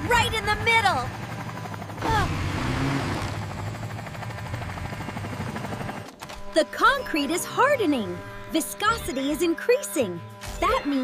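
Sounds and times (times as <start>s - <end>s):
cartoon helicopter rotor whirring: 0.0s - 11.0s.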